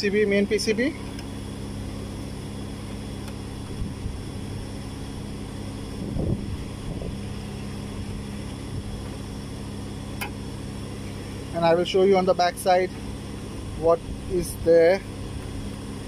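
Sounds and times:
machinery humming: 0.0 - 16.0.

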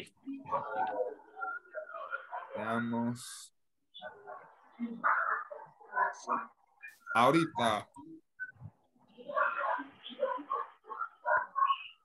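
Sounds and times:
dog barking: 4.0 - 6.5, 9.3 - 11.8.

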